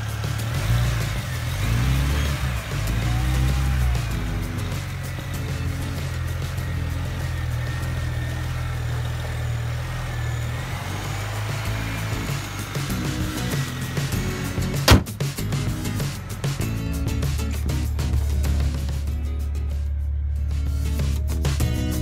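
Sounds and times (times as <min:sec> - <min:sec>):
background music: 0:00.0 - 0:22.0
car engine running: 0:00.0 - 0:22.0.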